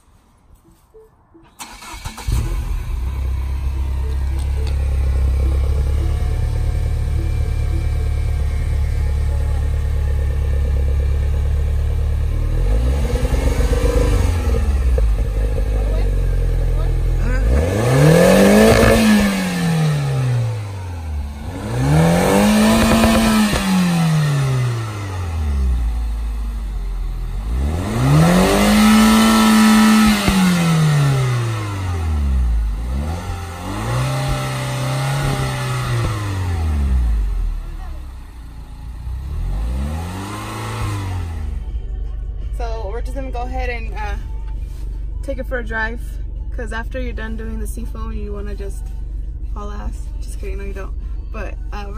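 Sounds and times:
car engine idling and revving: 1.4s - 51.9s.

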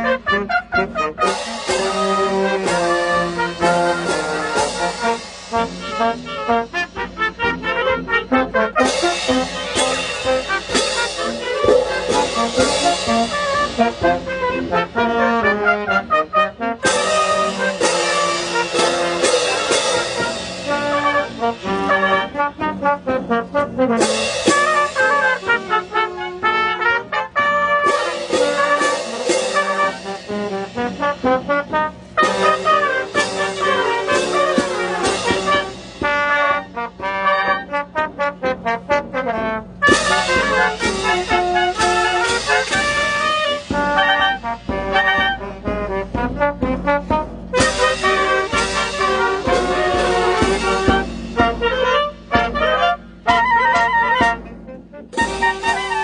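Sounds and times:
bass drum beat: 0.0s - 56.0s
brass and clarinets playing: 0.0s - 56.0s.

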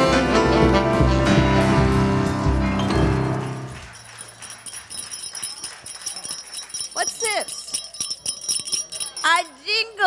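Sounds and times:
audience clapping: 1.8s - 7.3s.

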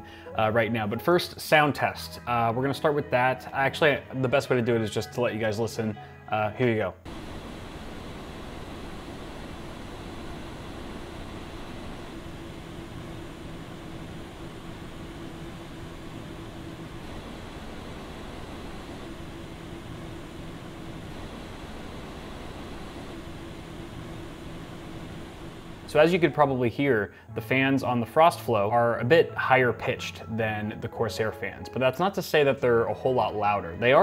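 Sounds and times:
faint steady hum: 5.4s - 28.3s
radiator fans rushing air: 7.1s - 27.3s.

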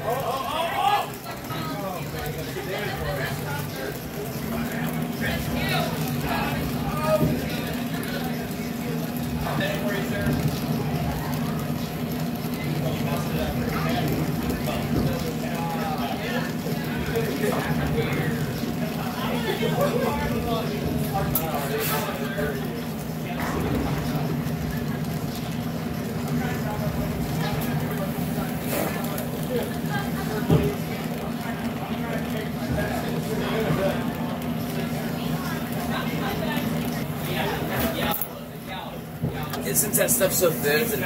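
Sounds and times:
faint voices: 0.0s - 41.0s
torch flame hissing: 0.0s - 41.0s.

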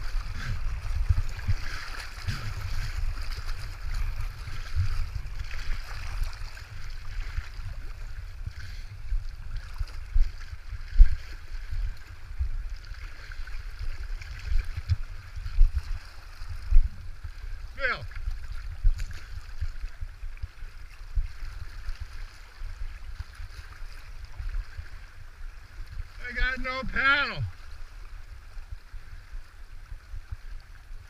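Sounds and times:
river water rushing and splashing: 0.0s - 31.0s
person's voice: 26.2s - 27.5s.

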